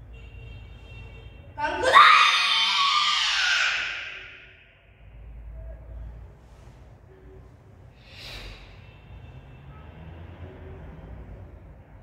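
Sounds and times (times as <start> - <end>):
girl shouting in echoing hall: 1.6 - 4.6.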